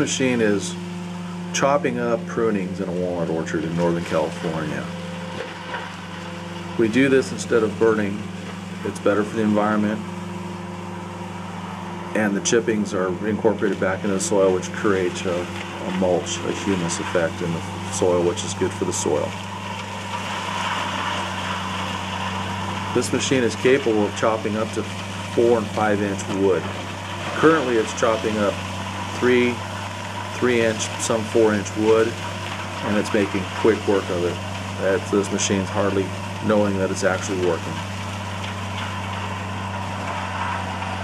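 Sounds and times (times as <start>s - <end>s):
hammer mill chopping wood: 0.0s - 10.9s, 11.6s - 41.0s
mulcher engine droning: 0.0s - 41.0s.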